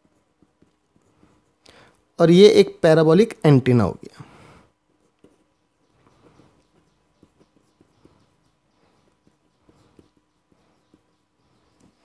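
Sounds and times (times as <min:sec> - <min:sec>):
marker pen writing on paper: 0:00.0 - 0:02.1, 0:04.7 - 0:12.0.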